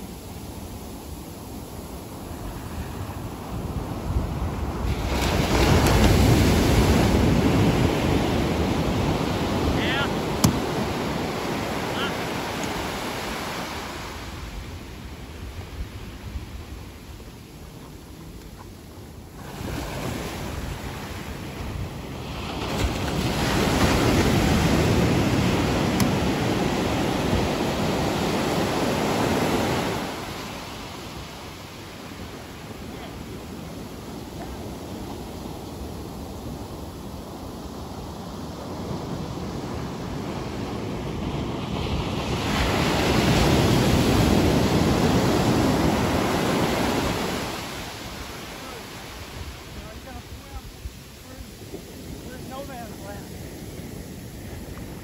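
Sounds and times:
ocean surf breaking: 0:00.0 - 0:55.0.

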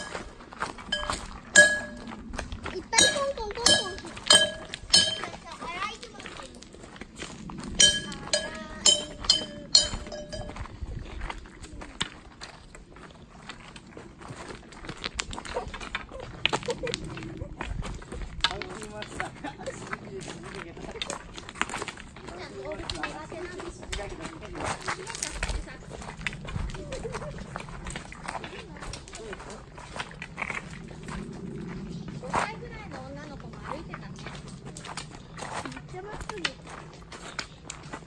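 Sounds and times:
footsteps on stony trail: 0:00.0 - 0:38.0
bells jingling: 0:00.9 - 0:05.5, 0:07.8 - 0:10.8.

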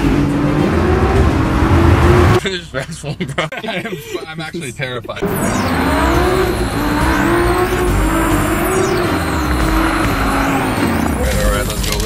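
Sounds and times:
car engine accelerating hard: 0:00.0 - 0:02.4, 0:05.2 - 0:12.0.

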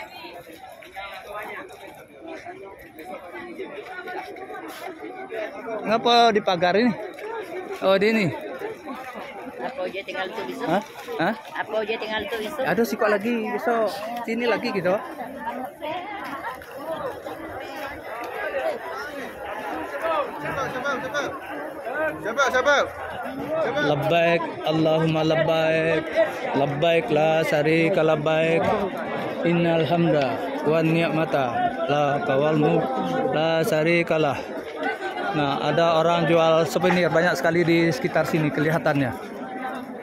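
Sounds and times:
crowd chattering: 0:00.0 - 0:40.0.

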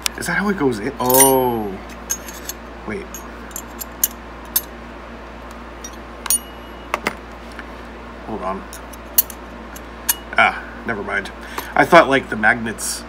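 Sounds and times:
metal pieces clicking and clinking: 0:01.1 - 0:01.5, 0:02.1 - 0:04.7, 0:08.8 - 0:09.4.

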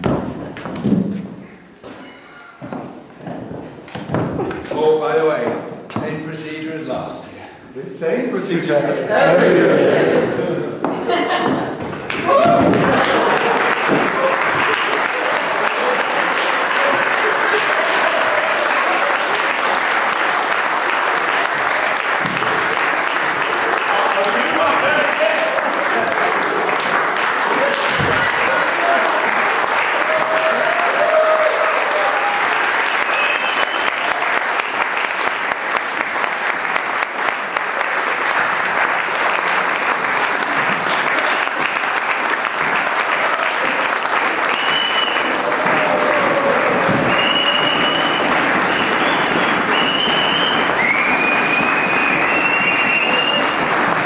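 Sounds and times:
audience applauding: 0:09.2 - 0:54.0.

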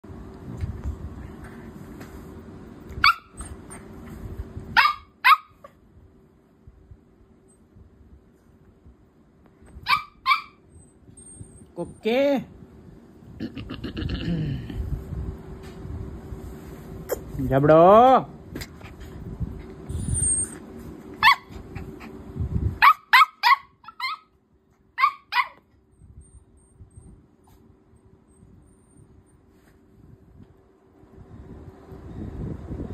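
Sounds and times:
puppy barking: 0:03.0 - 0:03.6, 0:04.8 - 0:05.8, 0:09.8 - 0:10.6, 0:21.2 - 0:21.8, 0:22.8 - 0:24.3, 0:25.0 - 0:25.7.

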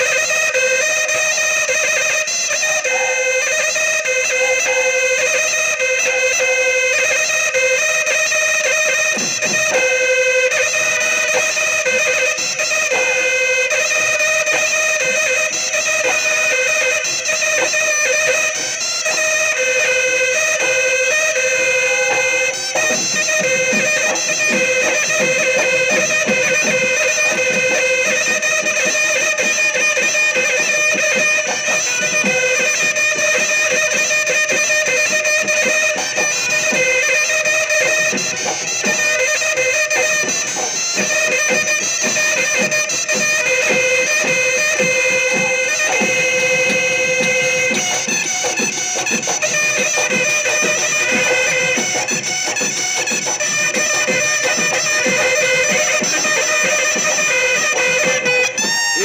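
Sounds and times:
drums beating: 0:00.0 - 0:59.0
shrill reedy horn pipe melody: 0:00.0 - 0:59.0
reed pipe held note: 0:02.5 - 0:03.4, 0:09.2 - 0:27.4, 0:57.7 - 0:59.0.

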